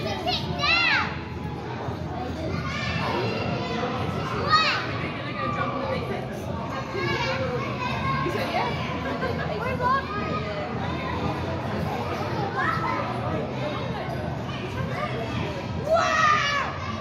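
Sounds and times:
children shouting and playing: 0:00.0 - 0:17.0.

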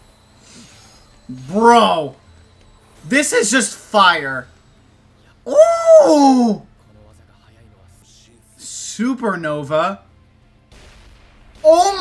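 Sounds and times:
man exclaiming in amazement: 0:01.3 - 0:02.1, 0:05.5 - 0:06.7, 0:11.6 - 0:12.0.

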